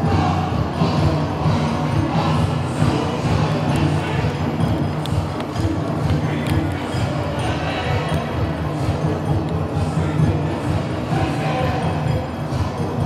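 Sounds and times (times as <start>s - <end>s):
festival music playing loudly: 0.0s - 13.0s
murmur of large crowd: 0.0s - 13.0s.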